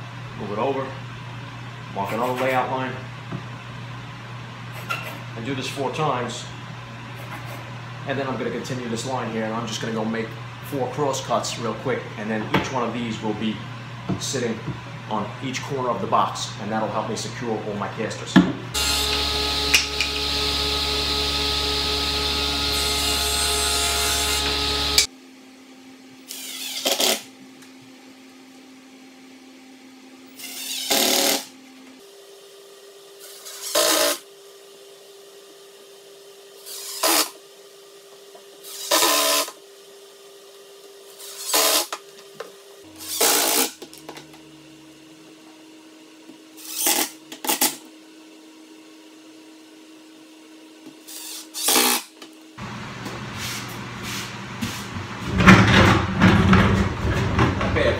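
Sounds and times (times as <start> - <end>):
table saw cutting plywood: 18.7 - 25.1, 26.2 - 27.3, 30.3 - 31.6, 33.2 - 34.3, 36.6 - 37.4, 38.6 - 39.6, 41.1 - 42.0, 42.8 - 44.7, 46.5 - 47.9, 51.0 - 52.2
cordless drill driving screws: 26.3 - 27.3, 30.4 - 31.5, 33.2 - 34.2, 36.7 - 37.4, 38.6 - 39.6, 41.2 - 42.0, 43.0 - 43.8, 46.6 - 47.7, 51.1 - 52.1.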